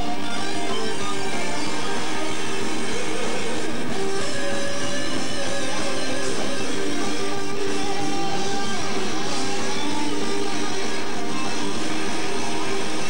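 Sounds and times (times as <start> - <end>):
heavy metal band playing live: 0.0 - 13.0.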